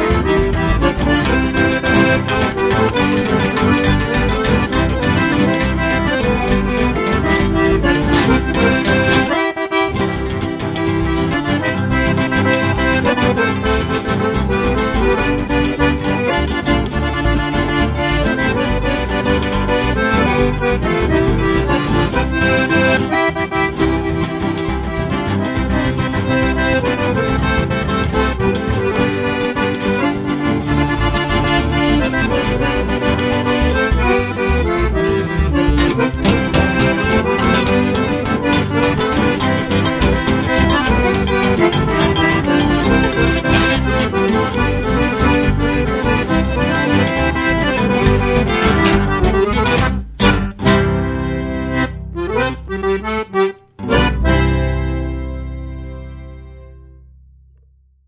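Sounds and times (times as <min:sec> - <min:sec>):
accordion-led polka band: 0:00.0 - 0:57.0.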